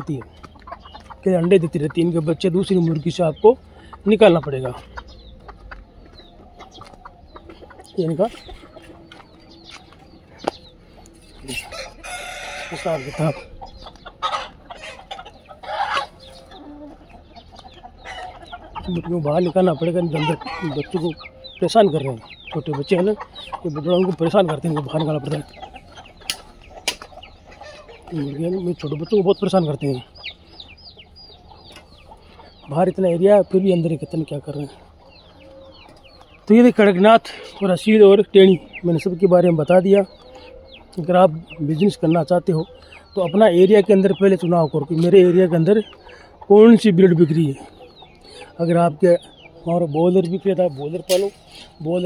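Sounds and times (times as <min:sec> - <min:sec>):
chickens clucking: 0:00.0 - 0:52.0.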